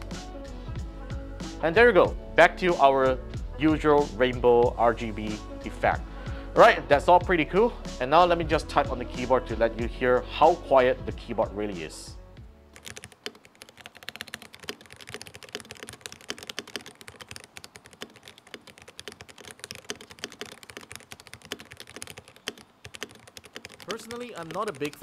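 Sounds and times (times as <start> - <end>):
fast mechanical keyboard typing: 12.8 - 25.0.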